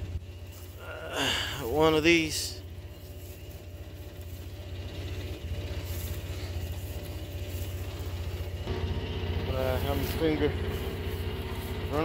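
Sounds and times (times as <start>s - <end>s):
utility vehicle engine idling: 0.0s - 12.0s.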